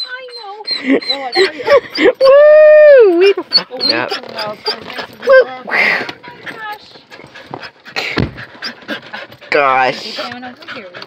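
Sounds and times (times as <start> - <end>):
dog panting: 0.0 - 2.2, 3.1 - 11.0
thump: 8.1 - 8.4.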